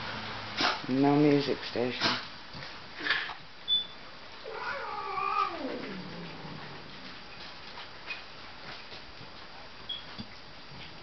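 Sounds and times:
pet yowling: 0:04.4 - 0:06.5.

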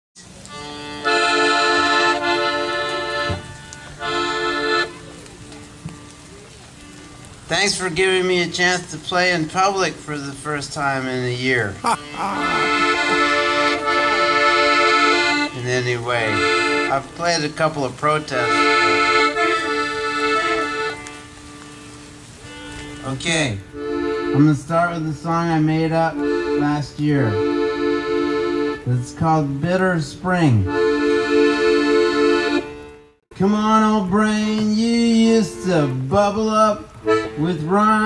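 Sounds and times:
accordion chords: 0:00.2 - 0:06.2, 0:07.1 - 0:38.0.

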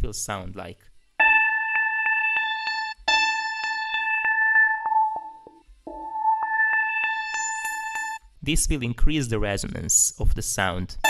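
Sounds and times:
ringing pitched resonant tone: 0:01.2 - 0:08.2.

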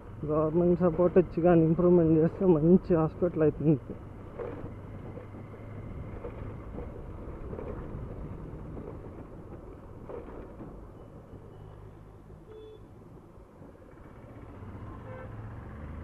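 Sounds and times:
road and air noise: 0:00.0 - 0:16.0.

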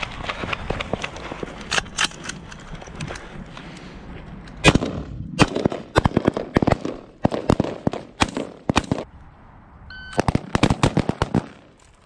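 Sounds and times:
rapid rifle fire: 0:04.6 - 0:09.0, 0:10.2 - 0:11.6
brief high tone: 0:09.9 - 0:10.2.

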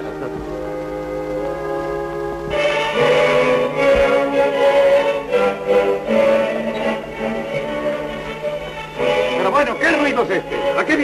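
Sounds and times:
orchestral music on gramophone: 0:00.0 - 0:11.0.

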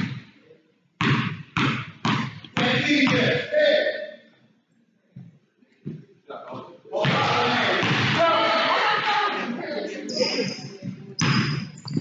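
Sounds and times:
basketball bouncing on hardwood floor: 0:01.0 - 0:03.2.

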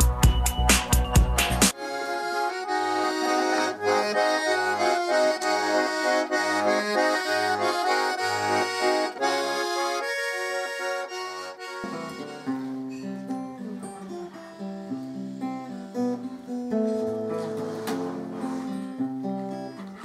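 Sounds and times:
button accordion folk tune: 0:01.4 - 0:16.6.

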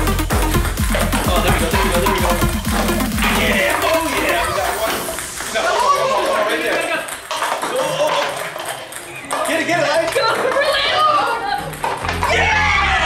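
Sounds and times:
background music: 0:00.0 - 0:06.9, 0:08.4 - 0:13.0
ping-pong balls bouncing on stone: 0:00.2 - 0:12.5
paper cups knocked over: 0:00.8 - 0:10.7
excited voices: 0:01.2 - 0:13.0.

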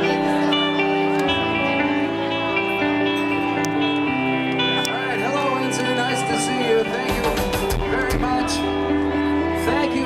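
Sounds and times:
crowd voices: 0:00.0 - 0:10.0
electric guitar ringing chords: 0:00.0 - 0:10.0.

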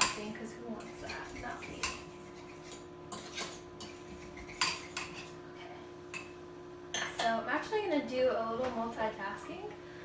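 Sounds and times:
fork clinking against bowl: 0:00.8 - 0:05.3.

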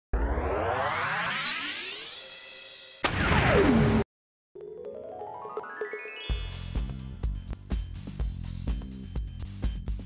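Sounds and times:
loud hit with falling pitch glide: 0:00.1 - 0:04.0
rising synth sweep: 0:00.1 - 0:04.0.

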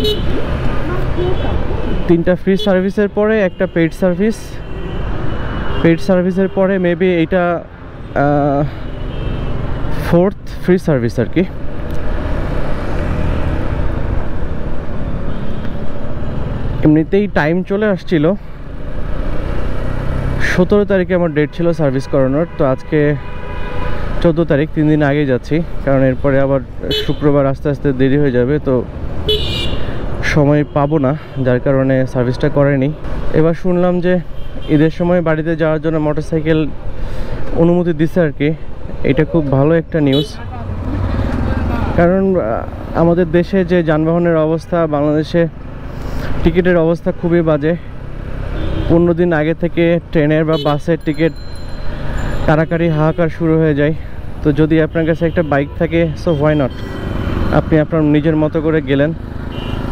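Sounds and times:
wind and road noise: 0:00.0 - 0:59.9
man talking: 0:02.0 - 0:04.7, 0:05.8 - 0:08.9, 0:10.0 - 0:11.6, 0:16.8 - 0:18.4, 0:20.4 - 0:23.3, 0:24.2 - 0:28.9, 0:30.2 - 0:36.8, 0:37.6 - 0:40.8, 0:41.6 - 0:45.6, 0:46.4 - 0:47.9, 0:48.9 - 0:51.4, 0:52.4 - 0:56.8, 0:57.5 - 0:59.2.

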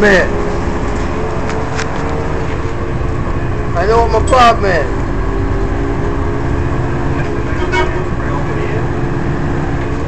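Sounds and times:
bus engine drone: 0:00.0 - 0:10.0
low road rumble: 0:00.0 - 0:10.0.

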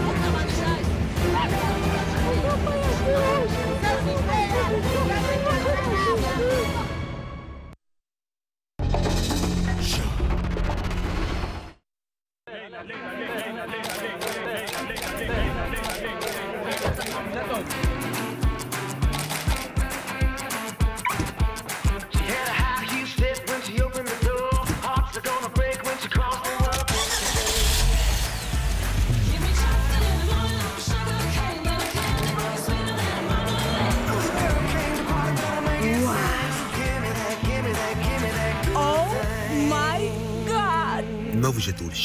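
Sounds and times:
background music: 0:00.0 - 0:07.8, 0:12.9 - 0:42.0
commercial soundtrack: 0:00.0 - 0:07.8, 0:08.8 - 0:11.8, 0:12.5 - 0:42.0
car engine starting and running: 0:16.8 - 0:20.4, 0:26.6 - 0:41.4
sharp clicks: 0:18.6 - 0:20.5, 0:31.6 - 0:32.6.

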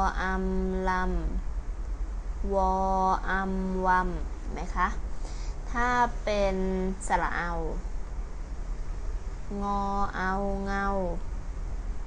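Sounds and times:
woman pronouncing a syllable: 0:00.0 - 0:01.4, 0:02.4 - 0:05.0, 0:05.7 - 0:07.8, 0:09.5 - 0:11.2.

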